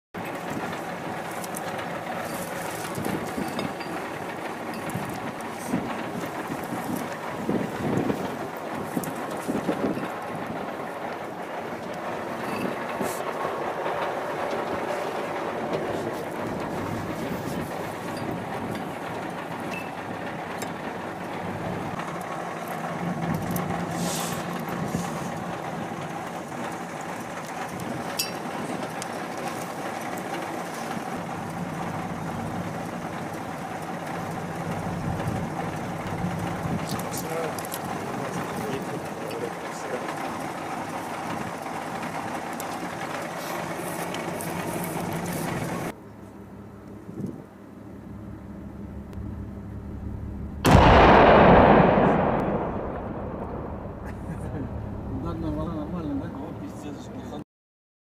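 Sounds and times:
engine-like drone: 0.2 - 57.4.

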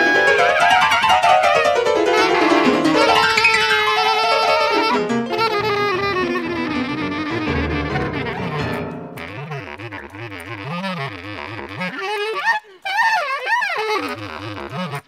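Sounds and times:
alto saxophone: 0.0 - 15.0
bass clarinet: 0.0 - 15.0.

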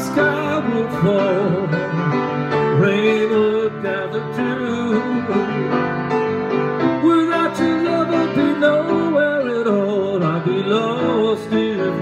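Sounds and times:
man singing a slow ballad: 0.0 - 6.1, 6.8 - 12.0
grand piano chords: 0.0 - 12.0.

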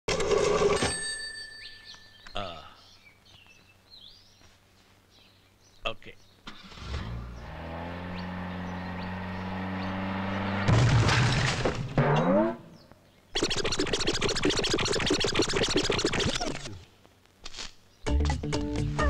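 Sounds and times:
car engine starting and idling: 6.5 - 12.6
faint bird chirps: 12.7 - 16.9
sharp clicks: 13.4 - 16.8.

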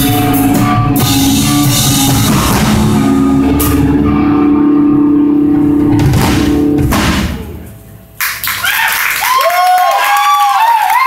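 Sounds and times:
rock band holding a loud chord: 0.0 - 7.9
bending wavering guitar notes: 0.0 - 8.0
sharp drum hit: 5.8 - 7.8.

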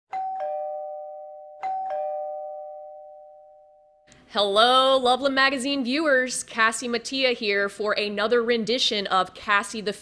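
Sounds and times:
two-tone doorbell chime: 0.1 - 4.1.

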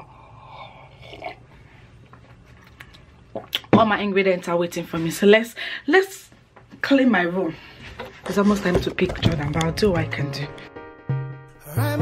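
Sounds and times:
sipping and swallowing: 2.6 - 3.8.

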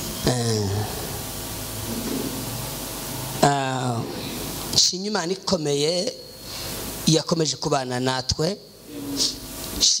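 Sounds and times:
microphone hiss: 0.0 - 10.0.

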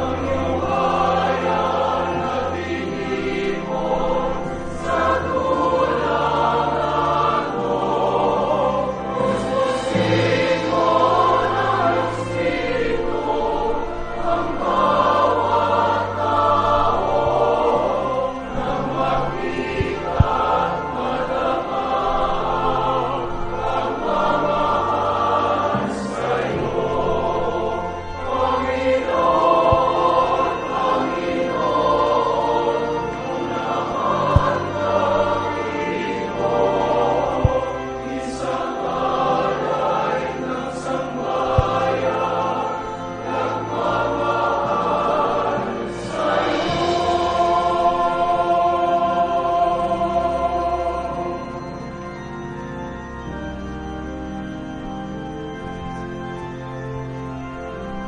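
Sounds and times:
choir singing a hymn: 0.0 - 58.0
instrumental accompaniment low notes: 0.0 - 58.0.

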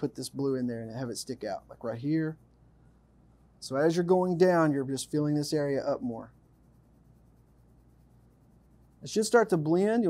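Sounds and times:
low steady hum: 0.0 - 10.0
pencil scratching on paper: 4.1 - 10.0.

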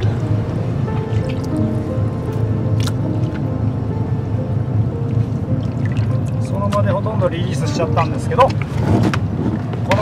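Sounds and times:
low hum: 0.0 - 9.8
background music: 0.0 - 10.0.

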